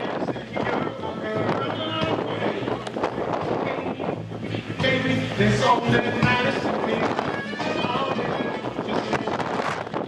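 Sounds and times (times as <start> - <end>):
bass line: 0.0 - 10.0
live reggae band: 0.0 - 10.0.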